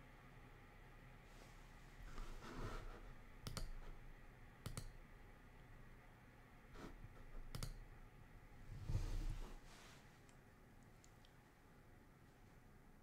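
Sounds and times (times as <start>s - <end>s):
low room hum: 0.0s - 13.0s
soft rustle: 1.2s - 3.1s, 8.6s - 11.6s
sharp clicks: 3.4s - 3.8s, 4.6s - 5.0s, 7.5s - 7.8s.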